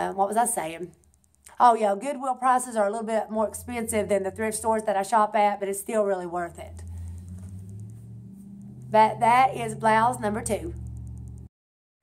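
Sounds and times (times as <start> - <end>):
vehicle engine drone: 2.8 - 11.5.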